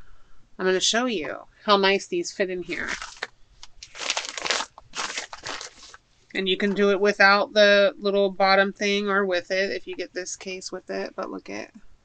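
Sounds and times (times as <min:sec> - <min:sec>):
plastic wrapping crinkling: 0:02.7 - 0:06.0.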